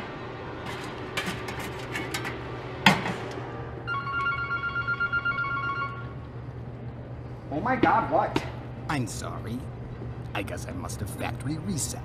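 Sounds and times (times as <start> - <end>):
electronic telephone ringing: 3.9 - 6.2.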